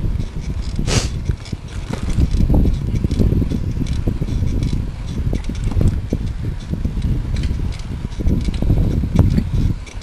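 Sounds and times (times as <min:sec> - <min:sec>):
road rumble: 0:00.0 - 0:10.0
small rattles and clicks: 0:00.0 - 0:10.0
wind buffeting microphone: 0:00.0 - 0:10.0.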